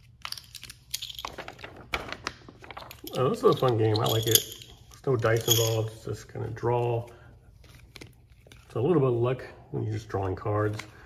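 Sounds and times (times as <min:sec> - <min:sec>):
paper rustling: 0:00.5 - 0:03.9.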